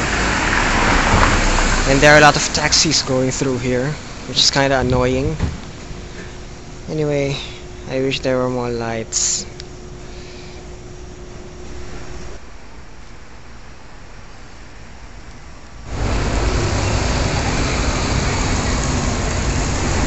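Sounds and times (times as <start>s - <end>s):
steady traffic noise: 0.0s - 20.0s
faint hum: 1.2s - 20.0s.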